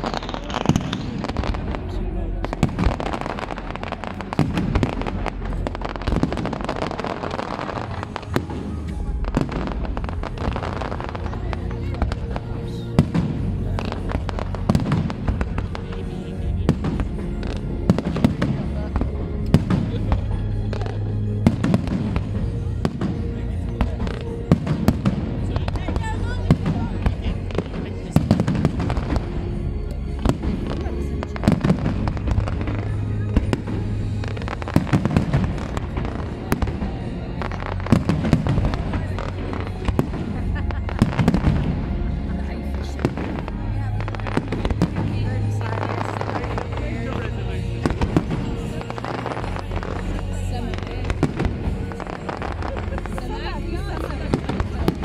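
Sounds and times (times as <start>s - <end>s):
fireworks bangs and crackles: 0.0s - 55.0s.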